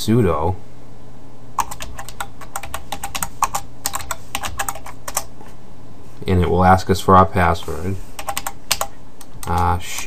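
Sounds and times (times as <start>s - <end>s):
keyboard keys clicking: 1.6s - 5.3s, 8.2s - 10.0s.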